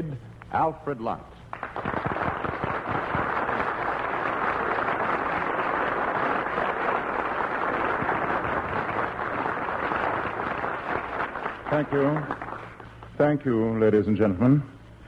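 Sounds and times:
audience applauding: 1.5s - 13.2s.

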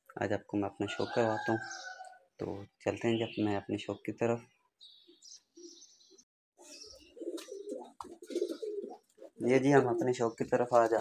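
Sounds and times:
pigeons cooing: 6.6s - 11.0s.

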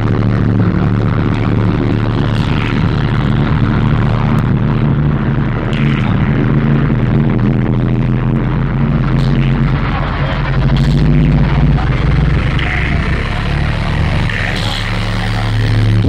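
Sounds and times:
droning deep bass: 0.0s - 16.0s
electronic dance music: 0.0s - 16.0s.

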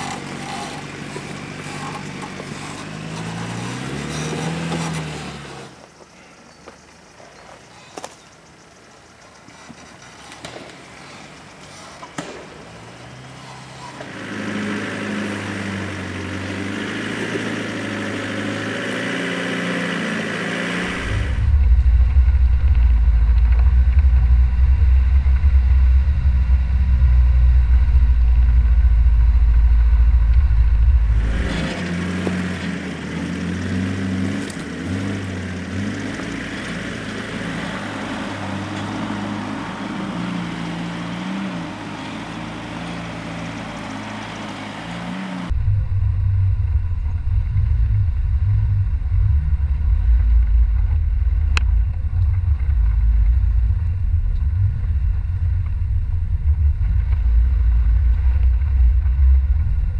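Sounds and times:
off-road engines pulling: 0.0s - 59.9s
deep rumble over rocks: 20.8s - 38.1s, 45.5s - 59.9s.

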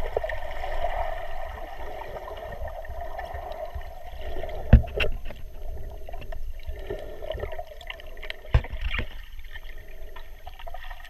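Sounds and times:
muffled underwater rush: 0.0s - 11.0s.

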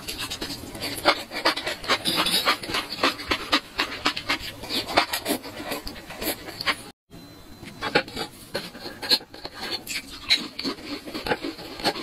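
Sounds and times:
wet crunchy chewing: 0.0s - 6.9s, 7.9s - 12.0s.

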